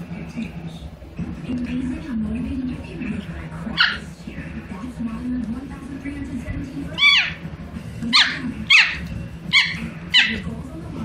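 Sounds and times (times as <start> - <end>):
small dog barking: 3.7 - 4.1, 8.1 - 10.5.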